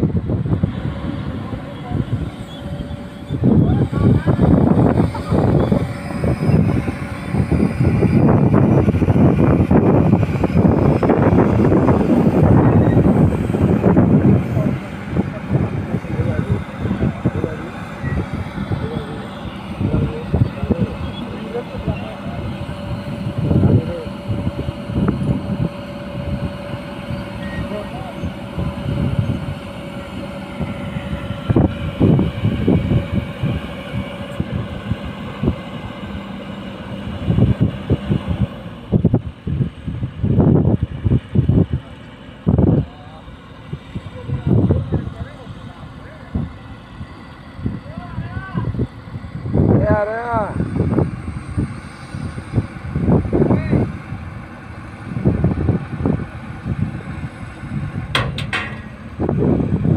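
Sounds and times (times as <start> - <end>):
excavator diesel engine running: 0.0 - 59.9
people's voices: 0.8 - 9.0, 11.8 - 33.1, 41.6 - 50.7.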